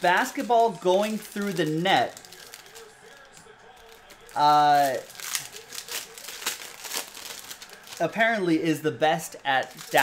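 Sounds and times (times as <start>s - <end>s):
handling trading cards: 0.0s - 10.0s
wrappers crackling: 0.0s - 10.0s.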